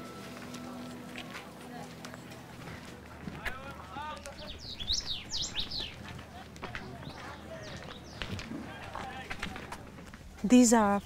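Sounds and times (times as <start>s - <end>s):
murmur of voices: 0.0s - 10.2s
birds chirping: 0.0s - 11.0s.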